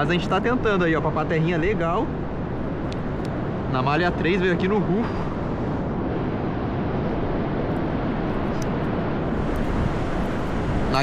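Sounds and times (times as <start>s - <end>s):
surf breaking on beach: 9.1s - 11.0s.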